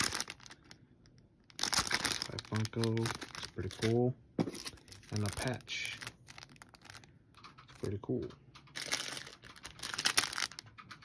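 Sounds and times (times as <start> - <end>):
plastic packaging crinkling: 0.0 - 8.0, 8.7 - 11.0.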